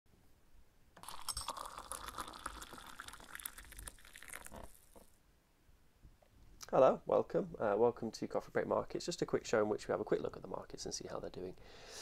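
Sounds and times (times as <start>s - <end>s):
liquid pouring into a cup: 1.0s - 5.1s.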